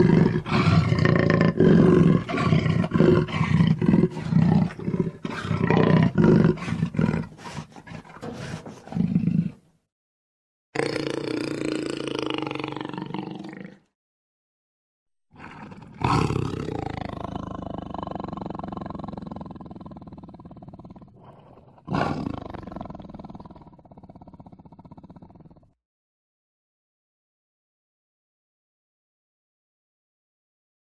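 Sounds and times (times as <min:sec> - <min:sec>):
jaguar growling: 0:00.0 - 0:09.7, 0:15.4 - 0:25.8
jaguar grunts: 0:00.0 - 0:09.7, 0:15.4 - 0:25.5.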